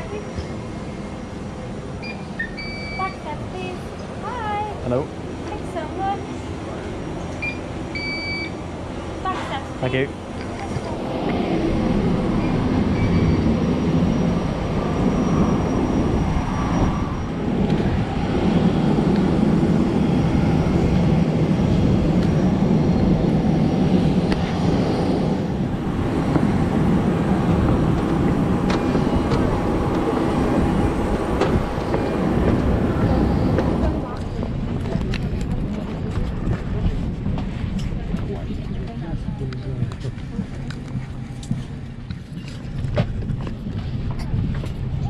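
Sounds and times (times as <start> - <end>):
aircraft mechanical rumble: 0.0 - 45.0.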